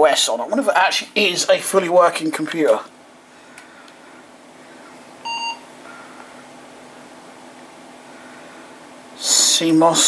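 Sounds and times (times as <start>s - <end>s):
computer humming: 0.0s - 10.0s.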